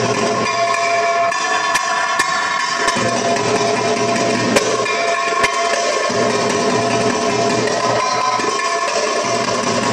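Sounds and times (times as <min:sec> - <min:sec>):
darbuka drum strikes: 0:00.0 - 0:09.9
sustained music tones: 0:00.0 - 0:09.9.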